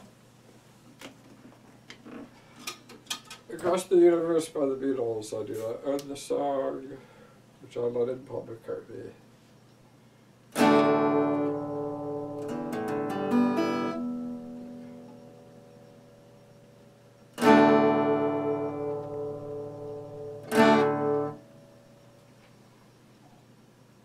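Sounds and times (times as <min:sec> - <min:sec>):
picked guitar notes: 0:10.5 - 0:16.6, 0:17.3 - 0:22.0
acoustic guitar strummed chords: 0:10.5 - 0:22.3.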